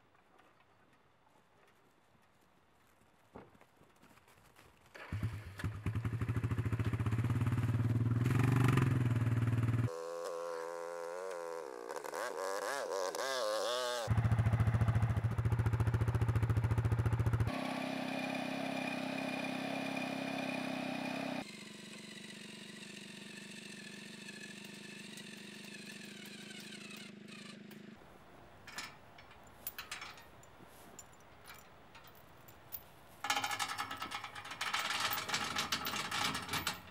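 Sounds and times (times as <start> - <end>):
atv engine running: 5.0 - 28.1.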